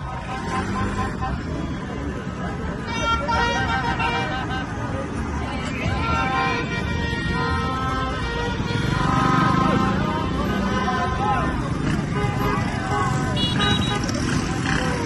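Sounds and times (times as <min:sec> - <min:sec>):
car horns honking: 0:00.0 - 0:01.8, 0:02.7 - 0:14.8
car and motorcycle engines: 0:00.0 - 0:15.0
crowd shouting and cheering: 0:09.3 - 0:15.0.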